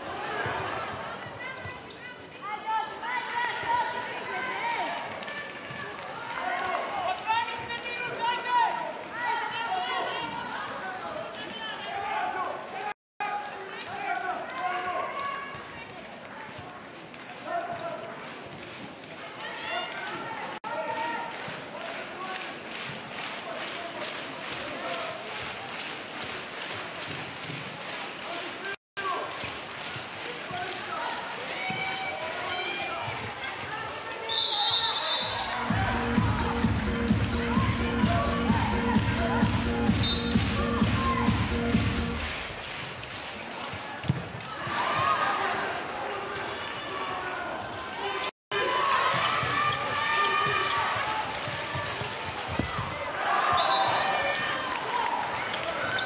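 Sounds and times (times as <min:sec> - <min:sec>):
crowd noise: 0:00.0 - 0:56.0
fast sharp beats: 0:35.3 - 0:42.8
ball bouncing on court: 0:44.0 - 0:44.4, 0:51.4 - 0:53.7.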